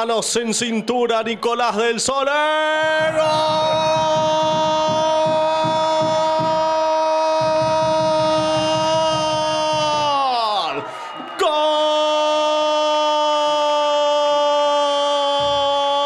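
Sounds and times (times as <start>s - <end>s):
commentator shouting goal: 0.0s - 16.0s.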